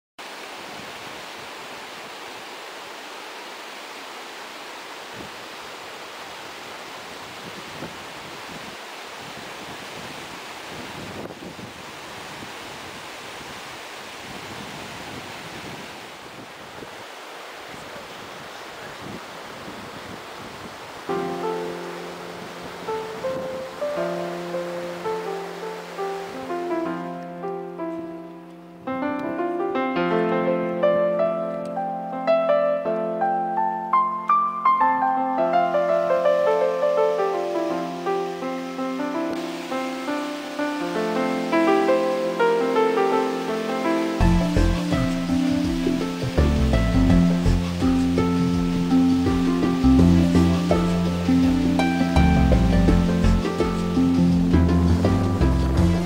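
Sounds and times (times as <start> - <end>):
stream rushing over rocks: 0.2 - 32.0, 33.9 - 56.0
music with held keyboard notes: 21.1 - 56.0.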